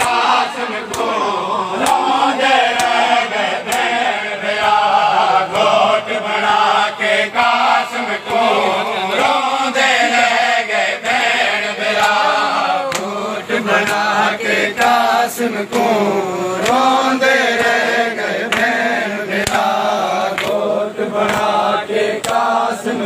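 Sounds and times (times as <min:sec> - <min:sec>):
men chanting in unison: 0:00.0 - 0:23.0
hands slapping chests: 0:00.9 - 0:01.2, 0:01.8 - 0:02.1, 0:02.7 - 0:03.0, 0:03.6 - 0:04.0, 0:12.9 - 0:13.1, 0:19.4 - 0:20.6, 0:21.2 - 0:21.6, 0:22.2 - 0:22.5.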